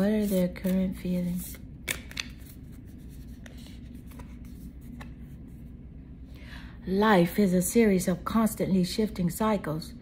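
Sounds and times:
cards being shuffled: 0.0s - 5.4s
low steady hum: 0.0s - 10.0s.

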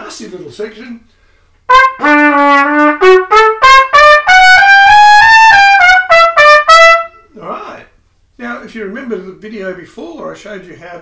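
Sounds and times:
man talking: 0.0s - 1.1s, 7.3s - 11.0s
trumpet playing fast passage: 1.7s - 7.3s.

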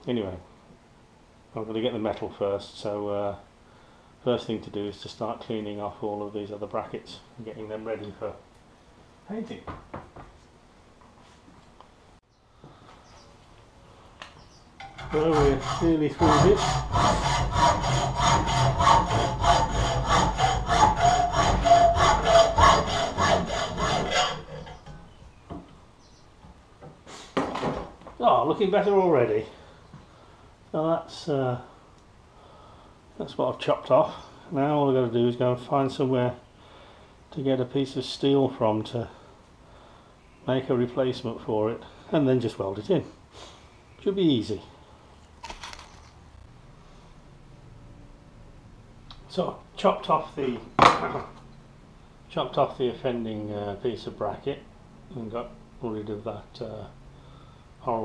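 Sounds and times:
hacksaw cutting metal: 14.8s - 25.0s
handling scrape or rustle: 45.4s - 46.4s.

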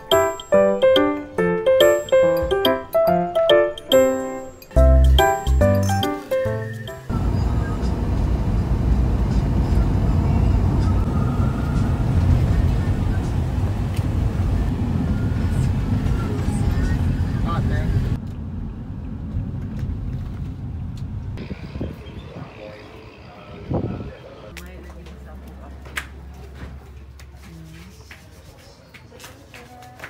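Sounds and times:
keyboard-like music: 0.0s - 8.0s
van engine and road rumble: 7.0s - 27.2s.

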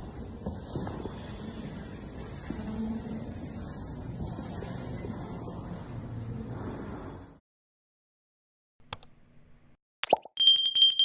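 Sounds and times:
mouse click: 8.9s - 9.1s
notification bell ringing: 10.4s - 11.0s.

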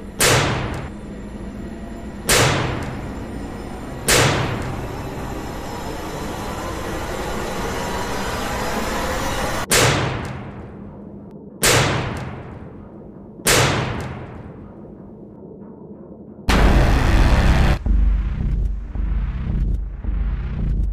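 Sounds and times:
rising noise swell: 16.5s - 20.4s
heavy booming hits: 16.5s - 20.8s.

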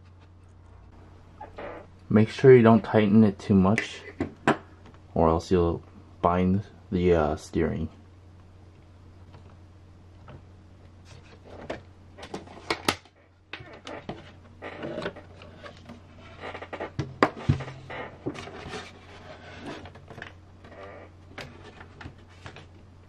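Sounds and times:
low steady hum: 0.0s - 23.0s.

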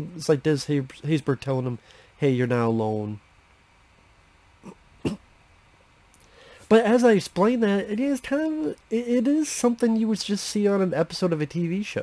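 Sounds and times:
man clearing his throat: 4.6s - 5.2s.

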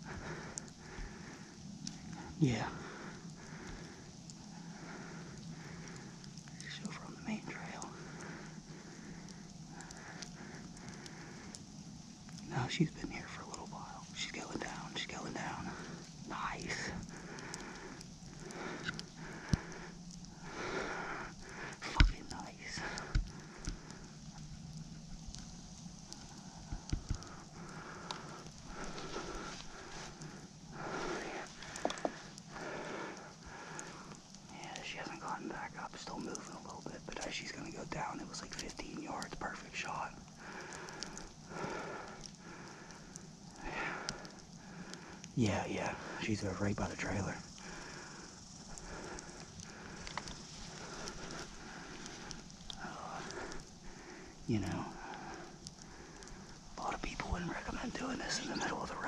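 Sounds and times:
man whispering: 1.9s - 11.6s, 12.4s - 23.9s, 26.2s - 42.2s, 43.5s - 44.4s, 45.4s - 56.0s, 56.6s - 59.0s.

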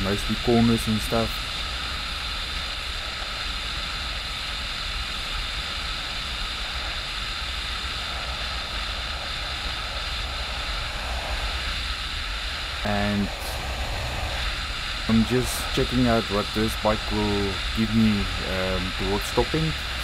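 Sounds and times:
wind rush on microphone: 0.0s - 20.0s
low rumble: 1.3s - 20.0s.

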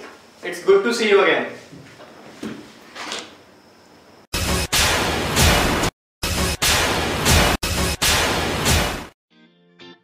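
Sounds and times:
office chairs rustling: 1.6s - 3.4s.

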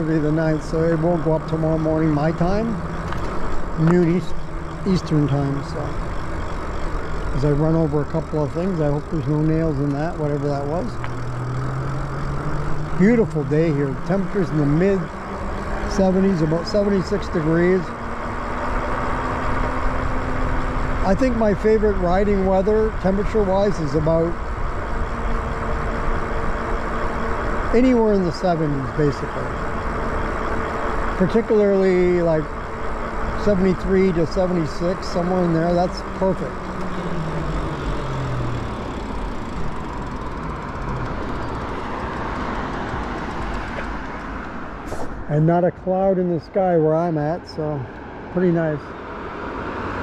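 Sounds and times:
bicycle tyres rolling on pavement: 0.0s - 47.3s
low hum falling in pitch: 34.6s - 44.8s.

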